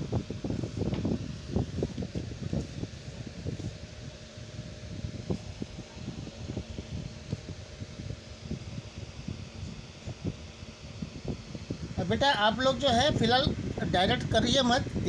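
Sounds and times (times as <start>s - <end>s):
faint steady hum: 0.0s - 15.0s
wind buffeting microphone: 0.0s - 15.0s.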